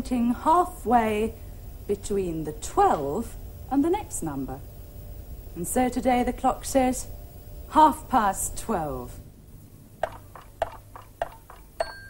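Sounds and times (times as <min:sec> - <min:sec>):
bell-like chime notes: 0:11.8 - 0:12.0.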